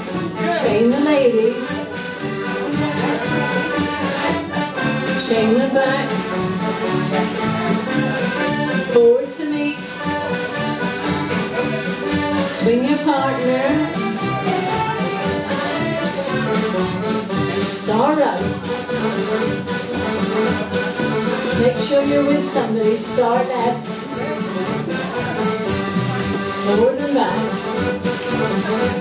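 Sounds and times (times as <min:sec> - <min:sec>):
accordion folk dance band: 0:00.0 - 0:29.0.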